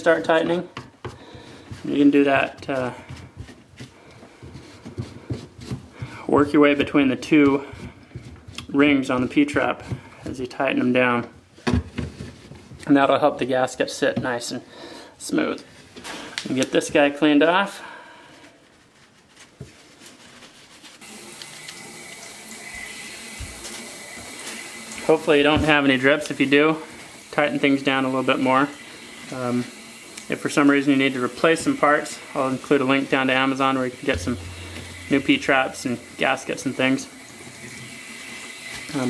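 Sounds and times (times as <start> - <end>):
sink tap running: 21.0 - 39.0
water draining through pipe: 21.0 - 39.0.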